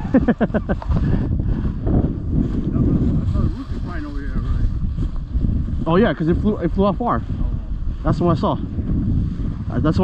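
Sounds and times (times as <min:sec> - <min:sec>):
man laughing: 0:00.0 - 0:01.1
wind buffeting microphone: 0:00.0 - 0:10.0.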